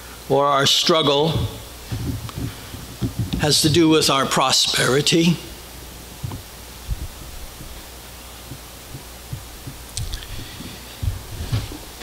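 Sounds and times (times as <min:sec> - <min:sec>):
steady low hum: 0:00.0 - 0:12.0
soft low thumps: 0:01.3 - 0:04.2, 0:05.5 - 0:12.0.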